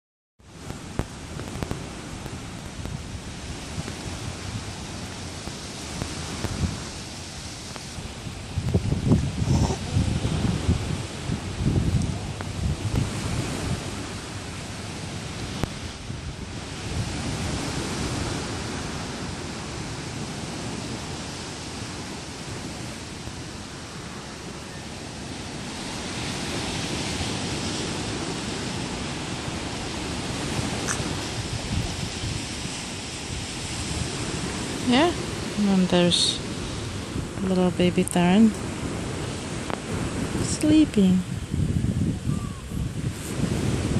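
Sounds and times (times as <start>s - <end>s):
outdoor noise haze: 0.4s - 43.8s
wind rumbling on microphone: 0.4s - 43.9s.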